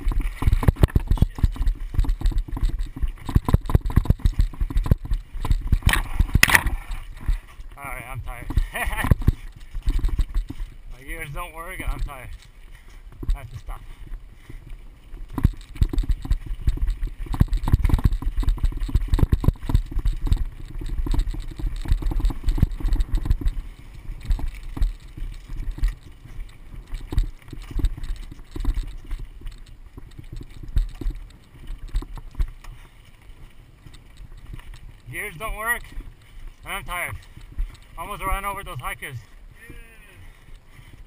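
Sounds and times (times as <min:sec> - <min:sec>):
bike rattling: 0:00.0 - 0:41.0
bike tyres rumbling over dirt: 0:00.0 - 0:41.0.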